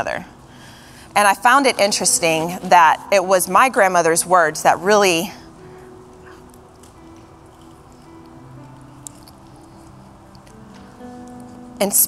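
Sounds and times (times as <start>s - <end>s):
soft held chords music: 0.0s - 12.0s.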